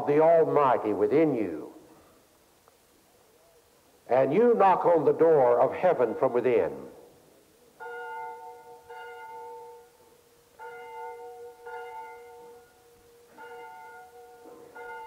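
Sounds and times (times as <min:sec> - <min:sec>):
church bells ringing: 0:00.0 - 0:01.6, 0:04.3 - 0:07.1, 0:07.8 - 0:15.0.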